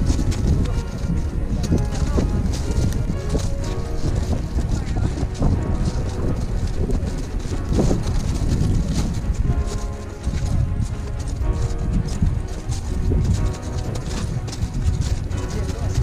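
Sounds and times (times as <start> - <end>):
background music: 0.0 - 16.0
crampon footsteps crunching on ice: 0.0 - 16.0.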